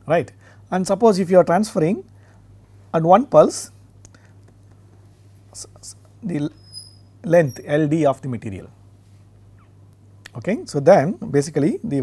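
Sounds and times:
low electrical hum: 0.0s - 12.0s
soft hissing: 2.0s - 11.1s.

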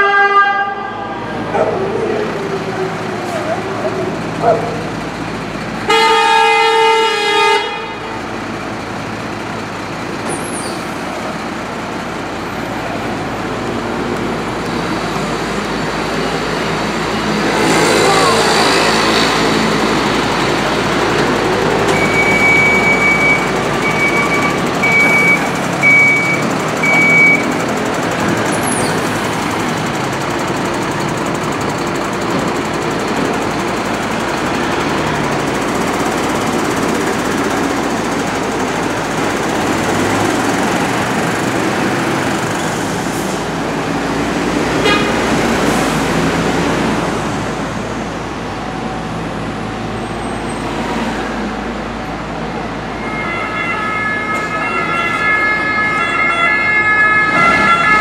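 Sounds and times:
diesel engine running: 0.9s - 58.0s.

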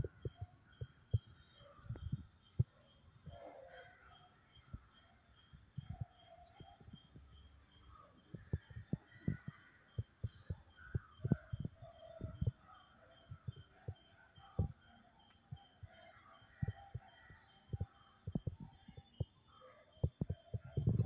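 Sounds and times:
pulsing high chirp: 0.0s - 21.0s
dull low thumps and knocks: 8.3s - 12.6s, 17.7s - 19.3s, 20.0s - 21.0s.

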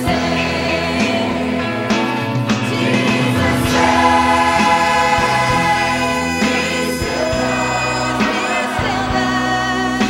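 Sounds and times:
choir singing gospel: 0.0s - 10.0s.

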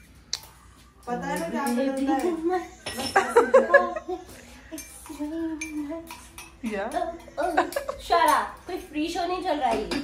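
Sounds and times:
steel utensils clinking: 1.0s - 3.6s, 4.6s - 10.0s.

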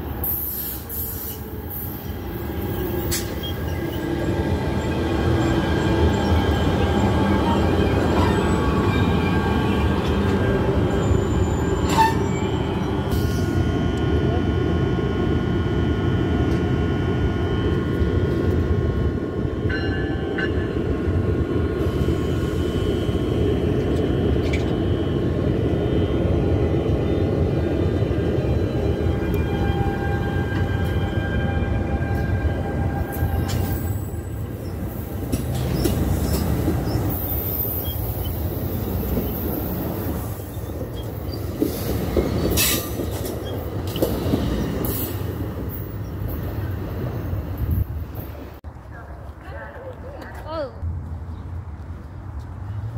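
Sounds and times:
train wheels rumbling on rails: 0.0s - 52.9s.

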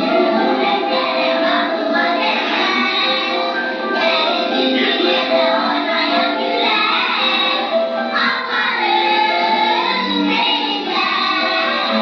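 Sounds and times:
children singing in chorus: 0.0s - 12.0s.

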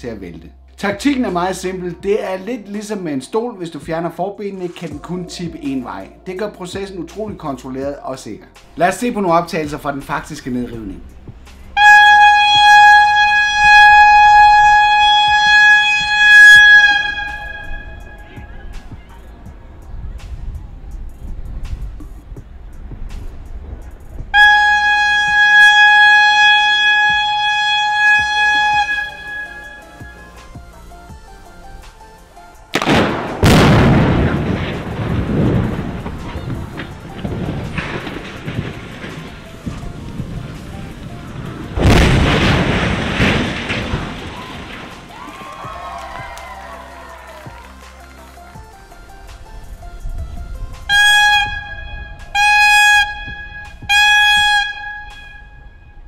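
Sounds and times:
warning horn: 10.6s - 19.8s, 24.3s - 45.6s, 48.6s - 56.0s
explosion blast: 32.7s - 46.4s
building collapsing: 32.8s - 47.4s.

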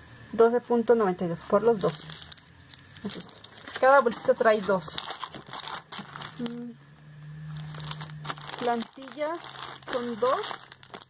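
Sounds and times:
steady low hum: 0.0s - 11.0s
plastic bag crinkling: 1.7s - 6.7s, 7.5s - 11.0s
person humming: 6.4s - 6.8s.

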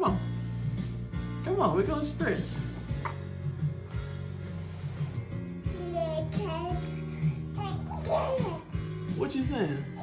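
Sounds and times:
background music: 0.0s - 10.0s
infant cooing and squealing: 5.8s - 8.7s.

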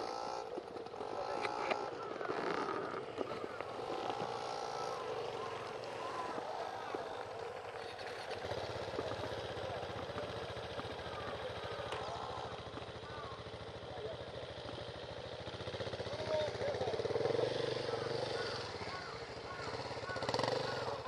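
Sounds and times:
faint voices: 0.0s - 21.0s
motorcycle engine idling: 0.0s - 21.0s.

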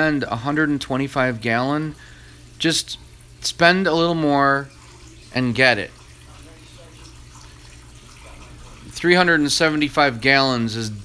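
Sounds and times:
low steady hum: 0.0s - 11.0s
water rushing in aquarium: 0.0s - 11.0s.

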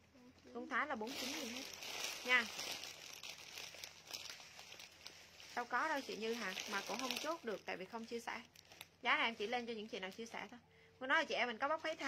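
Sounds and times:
plastic bag crinkling: 0.6s - 10.6s.

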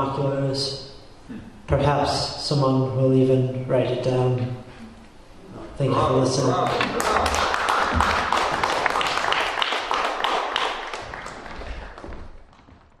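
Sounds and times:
audience applauding: 6.5s - 12.9s.

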